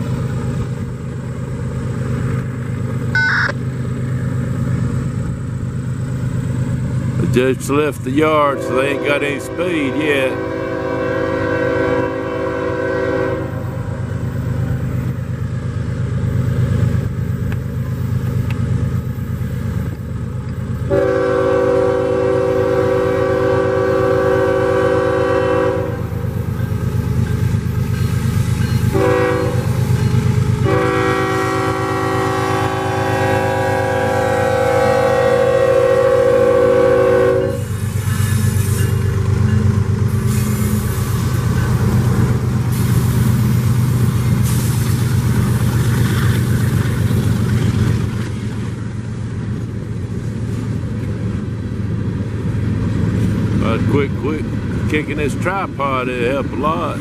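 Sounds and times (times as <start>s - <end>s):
diesel engines rumbling: 0.0s - 57.0s
locomotive air horn: 8.2s - 13.7s, 20.9s - 26.1s, 28.9s - 29.8s, 30.4s - 37.8s.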